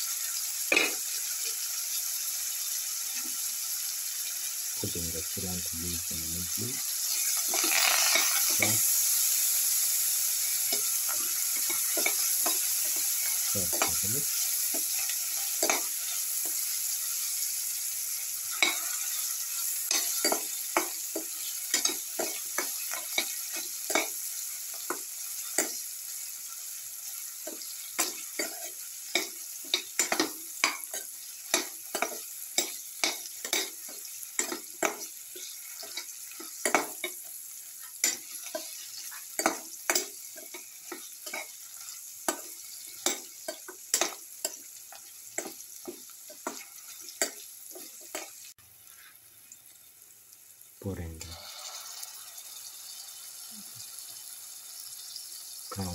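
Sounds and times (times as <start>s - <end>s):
vegetables sizzling in oil: 0.0s - 55.9s
spatula scraping pan: 7.1s - 8.8s.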